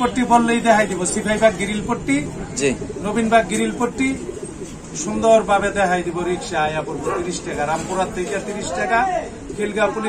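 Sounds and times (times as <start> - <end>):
man talking: 0.0 - 10.0
pigeons cooing: 0.0 - 10.0.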